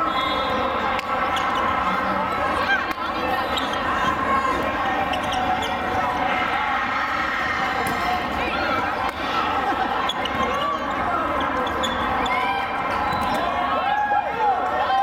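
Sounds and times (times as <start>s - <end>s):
din of many voices: 0.0s - 15.0s
shoe squeaks on court floor: 3.4s - 4.2s, 5.0s - 6.0s, 10.0s - 12.4s, 13.0s - 13.4s.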